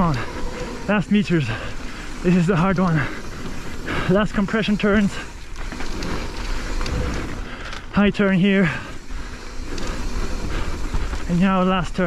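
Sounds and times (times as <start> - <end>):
bike tyres rolling on dirt: 0.0 - 12.0.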